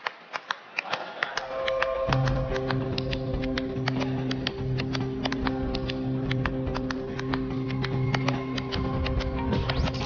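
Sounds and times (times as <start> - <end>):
sharp mouth clicks: 0.8 - 9.3
soft sustained background music: 1.4 - 10.0.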